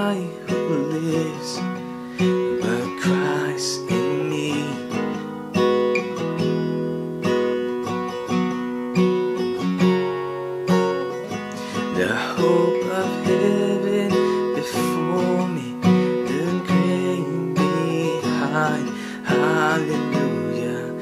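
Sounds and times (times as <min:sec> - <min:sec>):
man singing: 0:00.0 - 0:05.3, 0:11.6 - 0:21.0
acoustic guitar strumming chords: 0:00.0 - 0:21.0.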